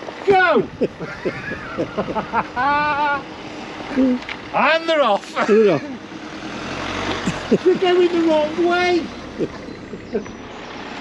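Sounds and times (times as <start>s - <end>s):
man laughing: 0.6s - 3.3s, 5.2s - 6.0s, 7.2s - 8.3s, 9.3s - 10.3s.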